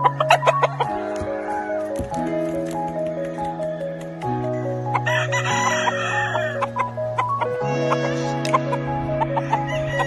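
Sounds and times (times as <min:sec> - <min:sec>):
rooster crowing: 0:05.0 - 0:06.6, 0:09.4 - 0:10.0.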